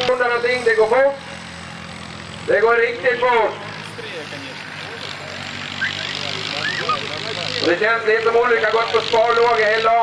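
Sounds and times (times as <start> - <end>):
tractor engine running: 0.0 - 10.0
faint voices: 2.5 - 10.0.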